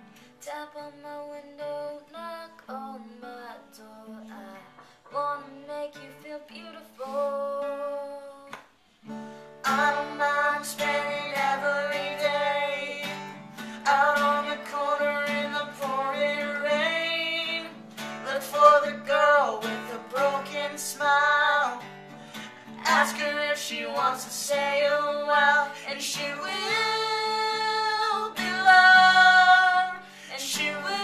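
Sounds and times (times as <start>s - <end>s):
acoustic guitar strumming: 9.1s - 31.0s
man and woman singing duet: 9.6s - 31.0s.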